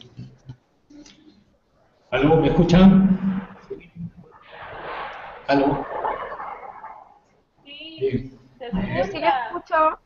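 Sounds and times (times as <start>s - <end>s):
line noise hiss: 0.0s - 10.0s
man talking over video call: 2.1s - 4.1s, 5.4s - 5.9s.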